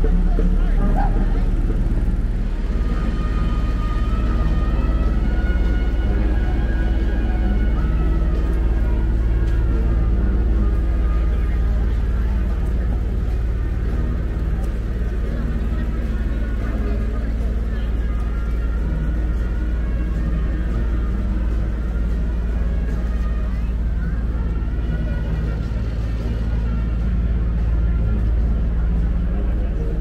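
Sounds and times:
people's voices: 0.0s - 30.0s
steady low rumble: 0.0s - 30.0s
sustained music-like tones: 0.0s - 30.0s.

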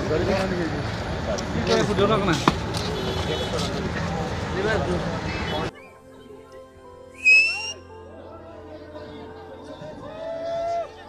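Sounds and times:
faint crowd background: 0.0s - 11.0s
short high whistle: 7.2s - 7.8s.

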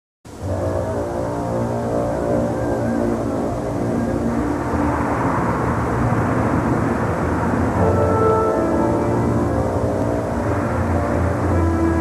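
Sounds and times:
street traffic rumble: 0.3s - 12.0s
sustained music tones: 0.3s - 12.0s.

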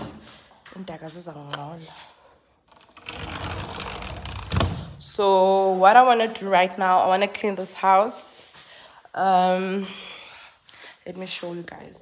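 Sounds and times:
sliding door rolling on track: 2.7s - 4.7s.

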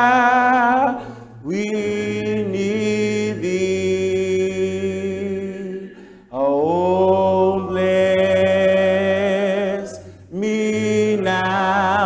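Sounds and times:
man singing a slow hymn: 0.0s - 12.0s
singer's breath: 5.8s - 6.3s.

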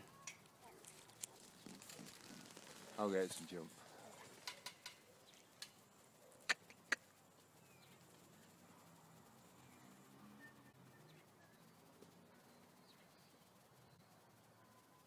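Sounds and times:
faint bird chirps: 3.9s - 15.0s.

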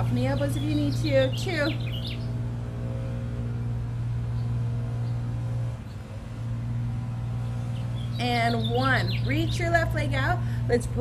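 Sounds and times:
low mechanical hum of machinery: 0.0s - 11.0s.

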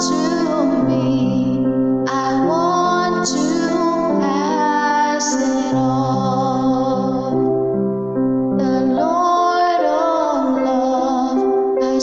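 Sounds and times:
woman singing: 0.0s - 7.5s, 8.6s - 12.0s.

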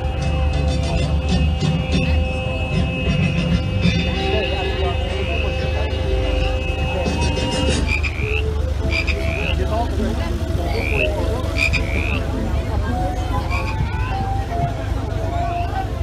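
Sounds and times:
steady low rumble: 0.0s - 16.0s
recorded frog croaking: 7.1s - 14.1s.

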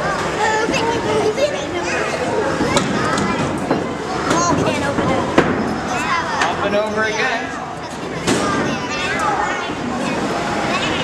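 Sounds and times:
children's excited voices: 0.0s - 11.0s.

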